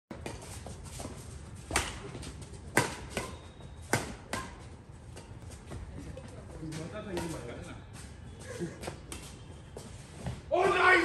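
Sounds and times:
racket hitting shuttlecock: 1.7 - 4.6.

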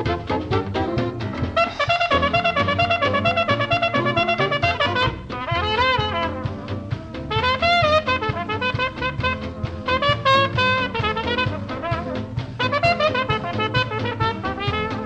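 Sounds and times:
swing dance band playing: 0.0 - 15.0
trumpet and trombone: 0.0 - 15.0.

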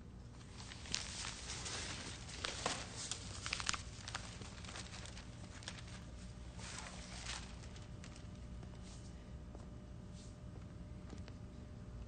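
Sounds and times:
low room hum: 0.0 - 12.0
newspaper pages rustling: 0.4 - 8.8.

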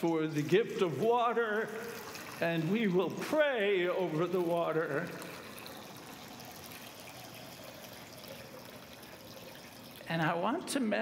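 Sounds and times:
water trickling from a pitcher: 0.0 - 10.8.

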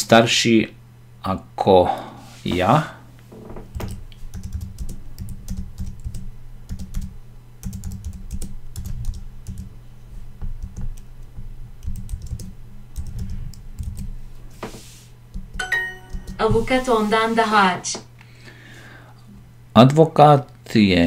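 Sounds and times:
keyboard typing: 3.7 - 9.7, 11.8 - 14.1, 15.3 - 16.4.

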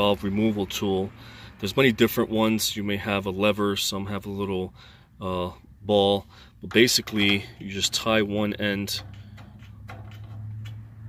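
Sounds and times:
metal tool ticking and clicking: 6.6 - 11.0.

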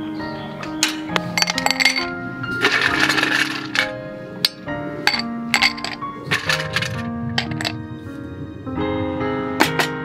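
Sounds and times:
background music: 0.0 - 10.0
ice cubes clinking in glass: 1.4 - 3.9.

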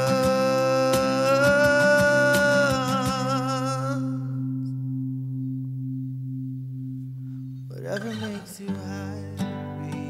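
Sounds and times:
person singing: 0.0 - 4.8, 7.7 - 10.0
acoustic guitar chord ringing: 0.0 - 10.0.

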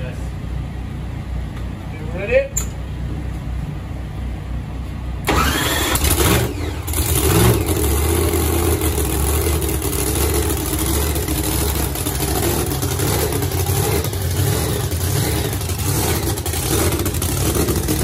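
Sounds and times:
race car engine starting and revving: 5.2 - 18.0
loud engine idle: 5.3 - 18.0.

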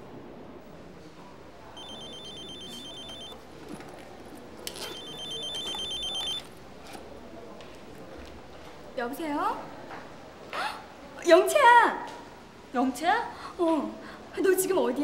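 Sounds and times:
phone trilling ringtone: 1.8 - 3.4, 4.8 - 6.5.

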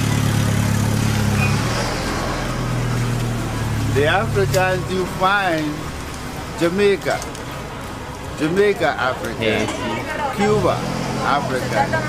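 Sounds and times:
street noise: 0.0 - 12.0
vehicle engine idling: 0.0 - 12.0.

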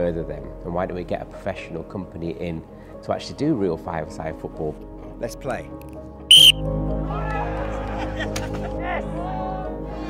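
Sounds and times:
background music: 0.0 - 10.0
referee's whistle blast: 6.3 - 6.6.

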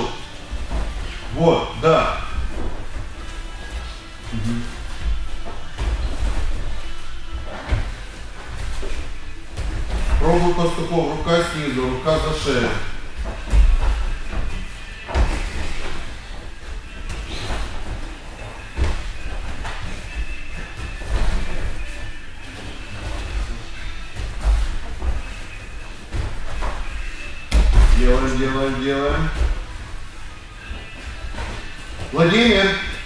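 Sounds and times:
bodies thudding on gym mats: 0.0 - 11.4, 12.1 - 33.0.

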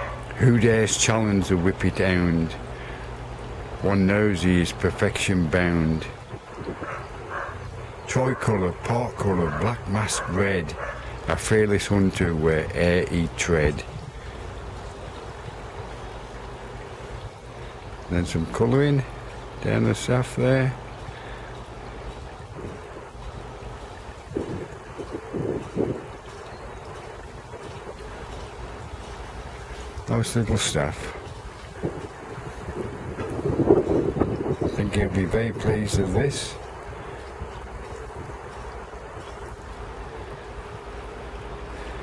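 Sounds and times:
running water rushing: 0.0 - 42.0
wind buffeting microphone: 5.9 - 11.5, 12.6 - 19.6, 20.8 - 41.7.

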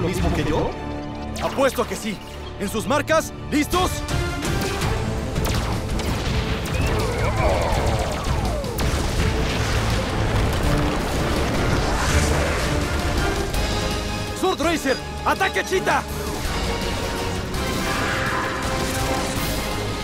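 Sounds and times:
dramatic action music: 0.0 - 20.0
booming explosions: 5.4 - 13.6.

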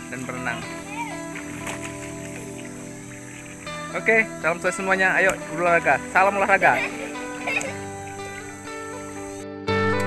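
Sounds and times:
soft music of held tones: 0.0 - 10.0.

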